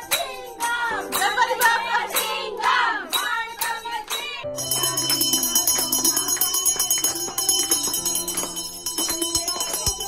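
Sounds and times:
devotional music: 0:00.0 - 0:10.0
bells ringing rapidly: 0:04.5 - 0:10.0.

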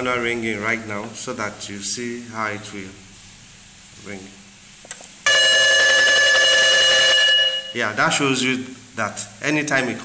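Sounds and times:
school bell gong ringing: 0:05.3 - 0:07.9.

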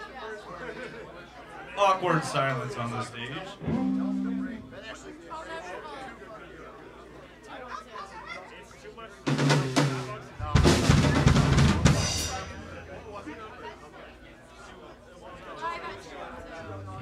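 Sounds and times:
drum kit fill: 0:03.6 - 0:04.7, 0:09.3 - 0:13.3.

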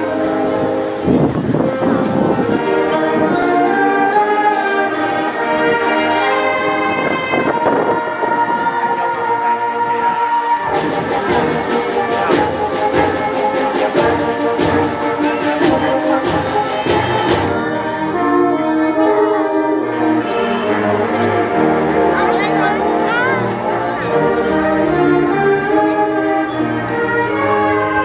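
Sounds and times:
concert band playing chords: 0:00.0 - 0:28.0
percussion strokes: 0:09.0 - 0:18.2, 0:22.8 - 0:28.0.

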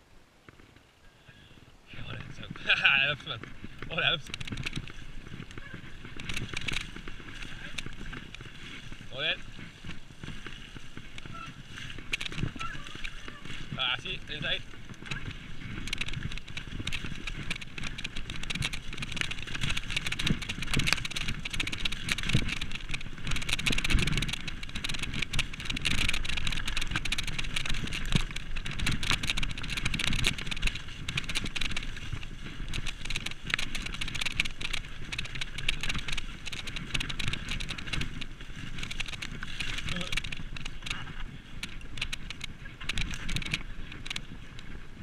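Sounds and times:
bike tyres on dirt trail: 0:00.0 - 0:45.0
bike chain and frame rattling: 0:02.0 - 0:45.0.

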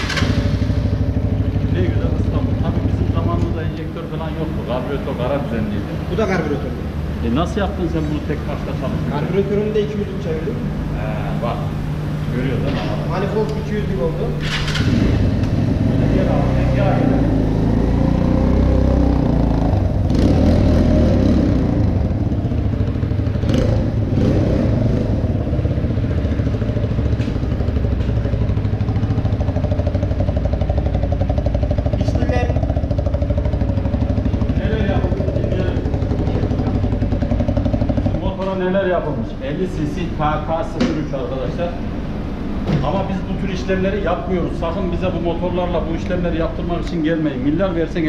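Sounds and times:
motorcycle engine running: 0:00.0 - 0:48.0.

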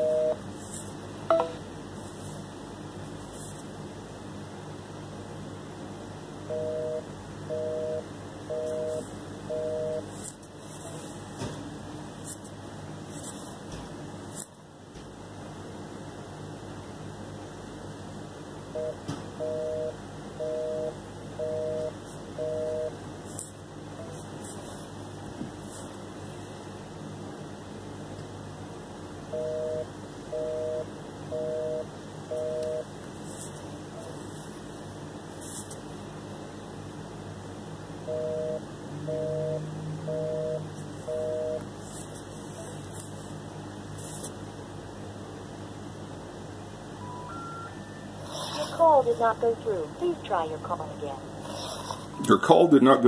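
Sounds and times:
telephone busy tone beeps: 0:00.0 - 0:00.4, 0:01.3 - 0:01.6, 0:06.5 - 0:10.1, 0:18.8 - 0:23.0, 0:29.3 - 0:32.9, 0:38.1 - 0:41.6, 0:47.0 - 0:48.8
stepped-up intercept tones: 0:47.0 - 0:48.2
phone line hiss: 0:47.0 - 0:48.9.

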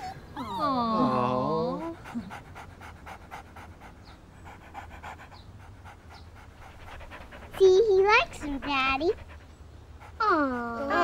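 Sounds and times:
dog panting: 0:01.8 - 0:11.0.

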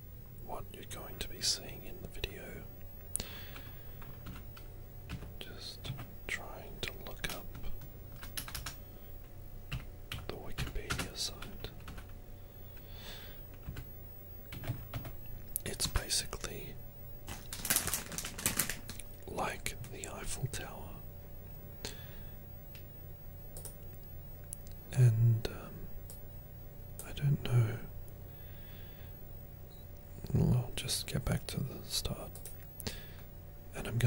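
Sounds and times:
man whispering: 0:00.4 - 0:02.8, 0:05.3 - 0:07.8, 0:10.2 - 0:11.8, 0:15.6 - 0:16.8, 0:19.2 - 0:21.1, 0:24.8 - 0:26.0, 0:27.0 - 0:28.0, 0:30.2 - 0:32.4, 0:33.7 - 0:34.0
small sharp clicks: 0:23.6 - 0:24.8, 0:32.3 - 0:32.9.

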